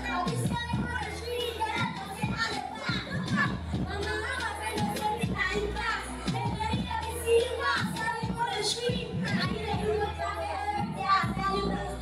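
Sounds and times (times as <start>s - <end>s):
background music: 0.0s - 12.0s
boy singing through microphone: 0.0s - 12.0s.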